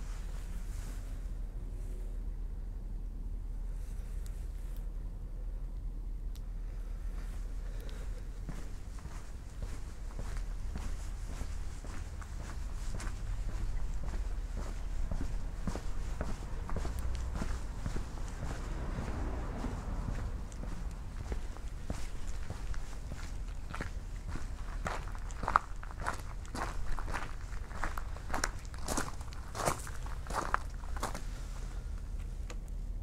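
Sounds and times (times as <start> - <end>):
low rumble: 0.0 - 33.0
footsteps on pavement: 7.1 - 31.4.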